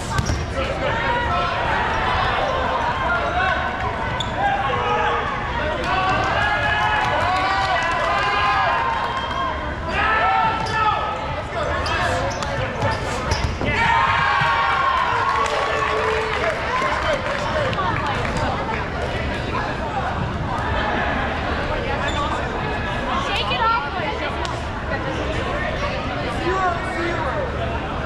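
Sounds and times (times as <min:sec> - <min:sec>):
balls bouncing on gym floor: 0:00.0 - 0:00.5.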